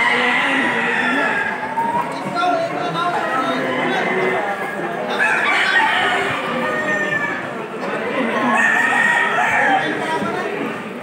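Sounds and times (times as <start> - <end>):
roosters crowing: 0.0 - 2.2, 3.1 - 10.6
crowd chatter: 0.0 - 11.0.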